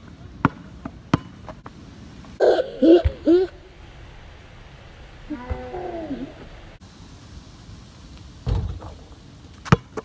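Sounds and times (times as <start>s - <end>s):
basketball thud on pavement: 8.4s - 9.0s, 9.6s - 10.0s.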